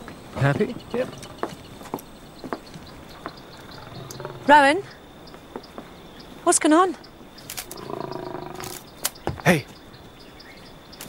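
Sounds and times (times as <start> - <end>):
tiger growling: 0.4 - 1.7, 2.9 - 5.0, 7.4 - 9.7.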